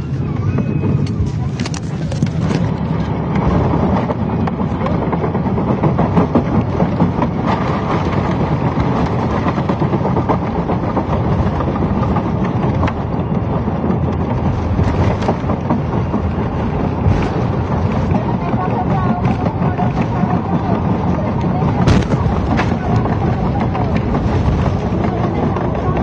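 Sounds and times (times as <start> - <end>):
airliner engine and runway rumble: 0.0 - 26.0.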